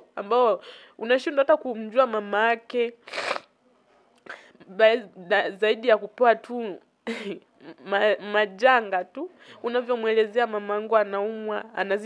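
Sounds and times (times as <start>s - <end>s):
woman speaking: 0.0s - 3.0s, 4.6s - 12.0s.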